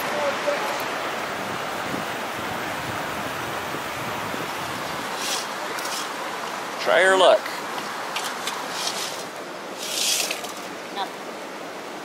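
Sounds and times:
creek water running: 0.0s - 12.0s.

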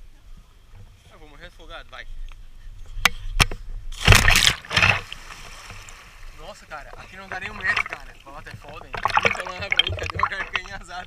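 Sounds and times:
person splashing into water: 4.0s - 6.4s, 7.2s - 8.2s, 8.8s - 11.0s.

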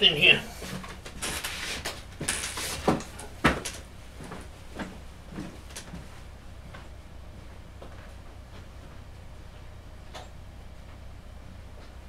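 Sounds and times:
steady low hum: 0.0s - 12.0s
sliding and rustling: 0.6s - 3.6s.

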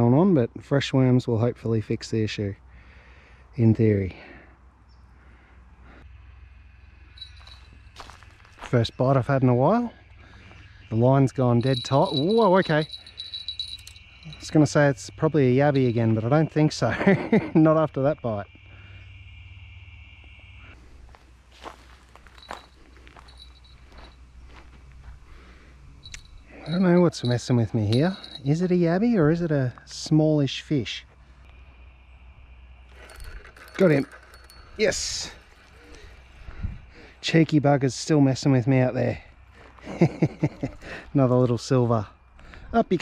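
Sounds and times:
low steady hum: 4.6s - 42.7s
high insect buzz: 6.1s - 8.7s, 10.0s - 24.6s, 31.4s - 37.2s
footsteps on dry dirt: 7.2s - 8.9s, 21.0s - 26.4s.

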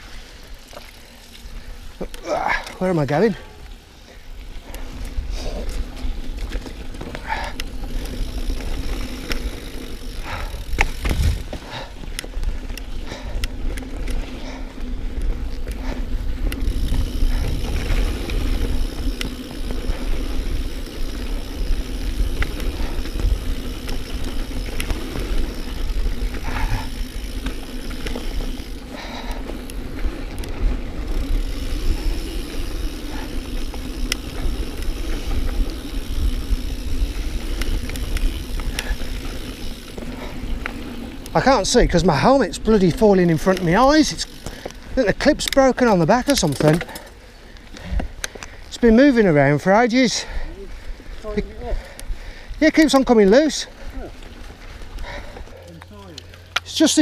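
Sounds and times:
bike clicking and rattling: 0.0s - 57.0s
tyre and wind rumble: 4.9s - 12.8s, 14.8s - 46.9s.

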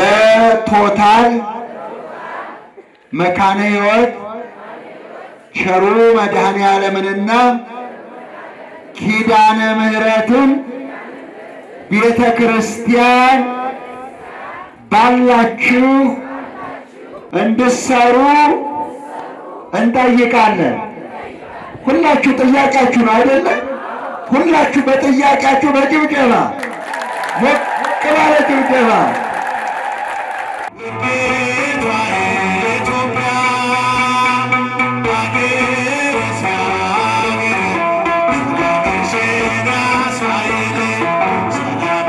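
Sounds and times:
man chanting through loudspeaker: 0.0s - 1.7s, 3.1s - 4.5s, 5.5s - 7.8s, 8.9s - 10.9s, 11.9s - 14.1s, 14.8s - 16.4s, 17.3s - 18.9s, 19.7s - 21.0s, 21.8s - 26.6s
crowd voices: 0.0s - 31.2s
amplified instrumental hymn music: 23.7s - 42.0s.

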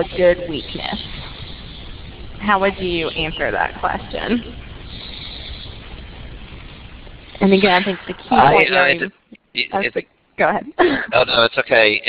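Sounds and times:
low rumble: 0.0s - 12.0s
steady background hiss: 0.0s - 12.0s.

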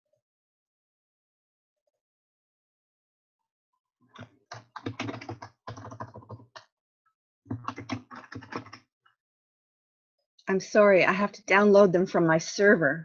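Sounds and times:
typing on a computer keyboard: 4.2s - 6.7s, 7.5s - 8.8s.

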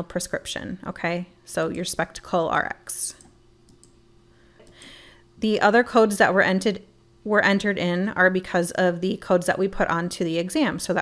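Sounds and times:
low background hum: 0.0s - 11.0s
computer mouse clicks: 3.1s - 4.0s.

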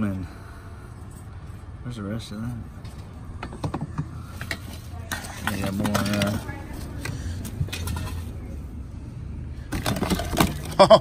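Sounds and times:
rummaging clicks and rustles: 2.8s - 8.5s.

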